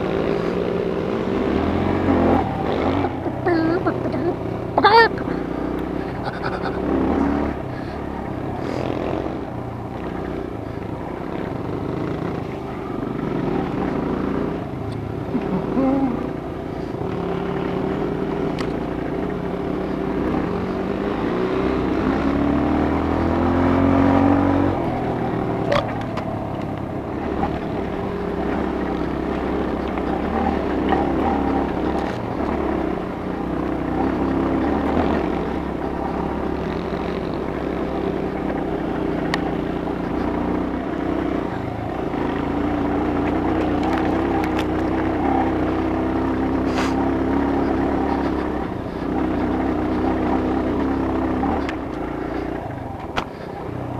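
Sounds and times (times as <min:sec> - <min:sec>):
dirt bike engine revving: 0:00.0 - 0:53.9.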